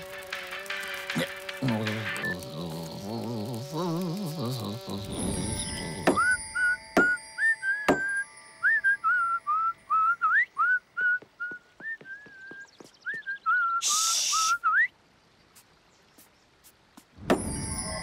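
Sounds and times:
person whistling a bouncy tune: 6.1s - 14.9s
short hiss: 13.8s - 14.7s.

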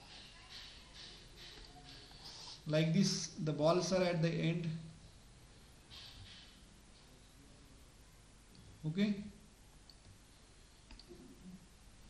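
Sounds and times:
computer mouse clicking: 10.9s - 11.2s.

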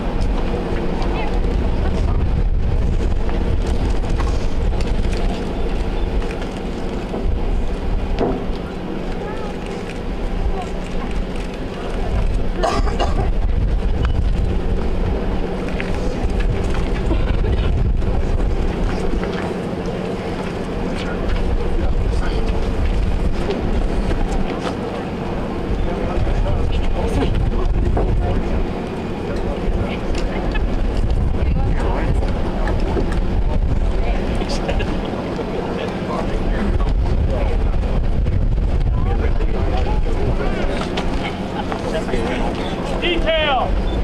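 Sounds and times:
faint voices murmuring: 0.0s - 44.0s
wind rumble on microphone: 0.0s - 44.0s.

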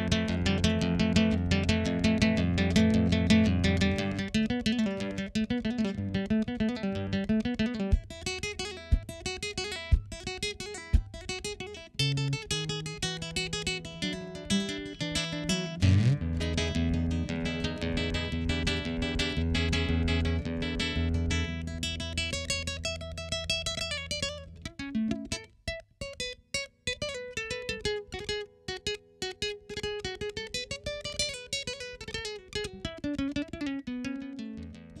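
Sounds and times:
classical guitar fingerstyle: 0.0s - 35.0s.

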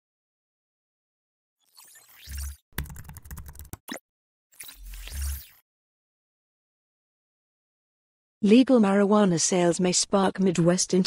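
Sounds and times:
keyboard keystrokes: 2.8s - 4.0s.

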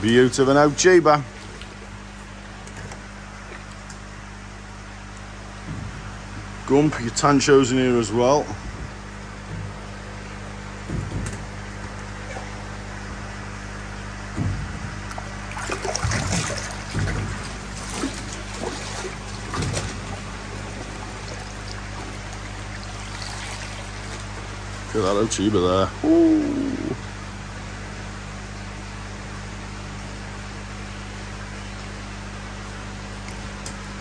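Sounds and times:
water splashing and sloshing: 0.0s - 7.2s, 8.2s - 25.9s
low hum: 0.0s - 34.0s
fish thrashing in water: 14.0s - 25.0s
water trickling: 14.4s - 25.4s.

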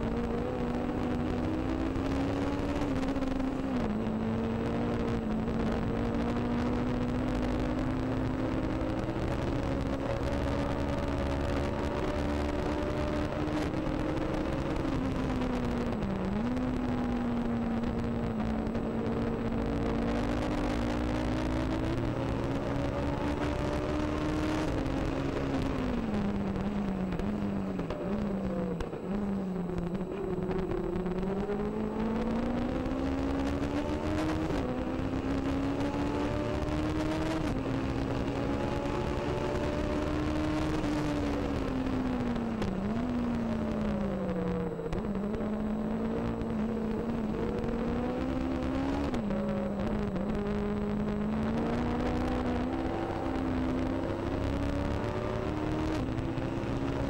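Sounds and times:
race car engine at high revs: 0.0s - 57.0s.

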